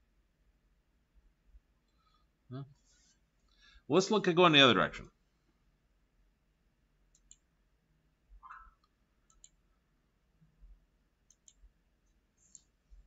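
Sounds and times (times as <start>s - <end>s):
computer mouse clicks: 7.1s - 7.5s, 8.4s - 9.6s, 11.3s - 12.8s.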